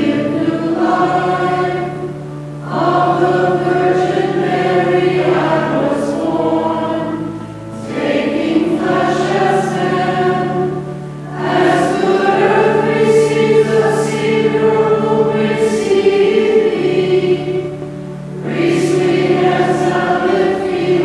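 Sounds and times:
choir singing a hymn: 0.0 - 21.0
low sustained notes: 0.0 - 21.0.

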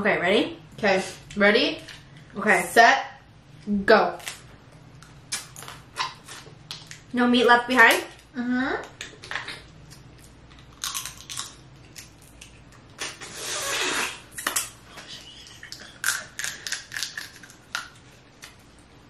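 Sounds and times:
crab shells cracking: 10.0 - 12.6, 15.7 - 18.6
meat being sucked out: 13.2 - 14.3.

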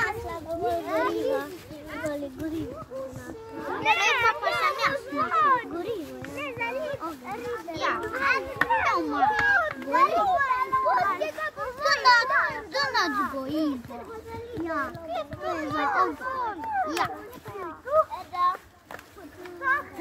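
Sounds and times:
young children chattering: 0.0 - 20.0.

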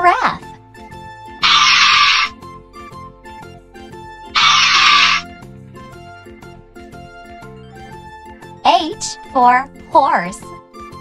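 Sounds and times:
light children's music: 0.0 - 11.0
hissy breathy animal sound effect: 1.4 - 2.4, 4.4 - 5.2.

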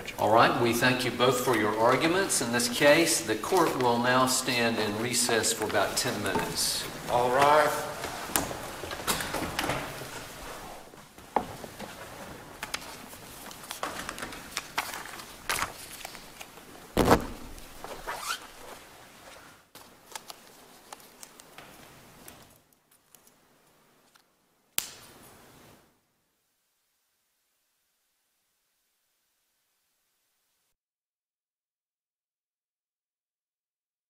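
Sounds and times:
faint room noise: 0.0 - 30.8.

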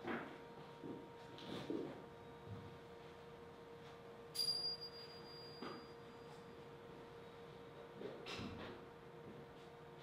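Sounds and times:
high ringing tone: 4.3 - 6.6.

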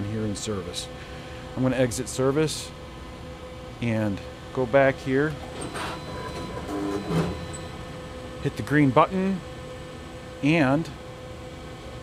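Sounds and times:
binding machine humming: 5.3 - 9.5.

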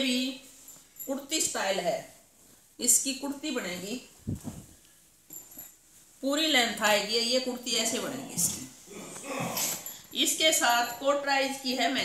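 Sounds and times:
cloth rustling: 0.0 - 12.0.

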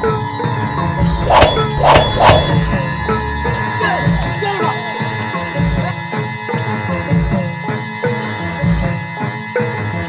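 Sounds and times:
background music: 0.0 - 10.0
swords clashing: 1.3 - 2.6.

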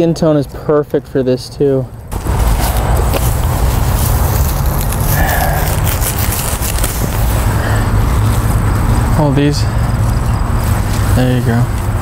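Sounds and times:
rumbling and crackling microphone noise: 1.9 - 12.0.

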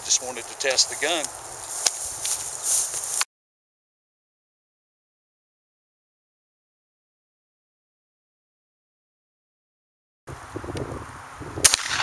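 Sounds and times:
outdoor background noise: 0.0 - 3.2, 10.3 - 12.0
shotgun shot: 11.6 - 12.0.

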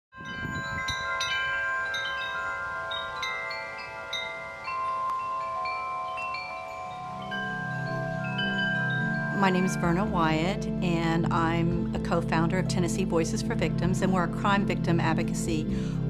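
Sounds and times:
metal tube wind chimes ringing: 0.2 - 11.0.

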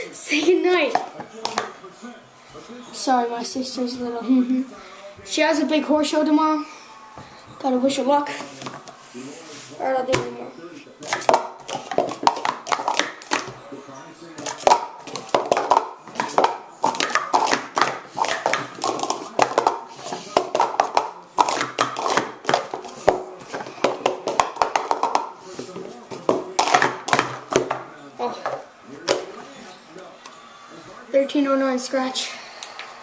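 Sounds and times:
plastic cups clacking: 0.4 - 1.8, 11.0 - 13.6, 14.4 - 29.4.

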